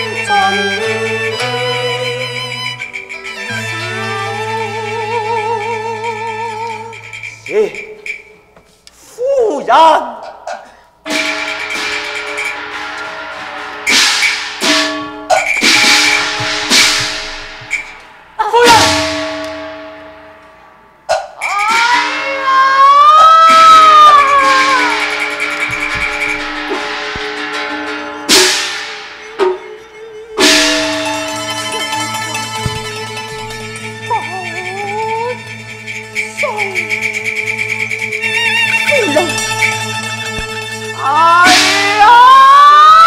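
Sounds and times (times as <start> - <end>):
sustained instrumental tones: 0.0 - 8.9, 11.0 - 22.6, 23.5 - 42.2.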